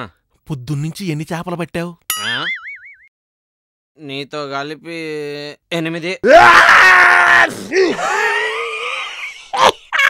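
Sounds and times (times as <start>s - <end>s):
high-pitched human scream: 6.2s - 9.2s.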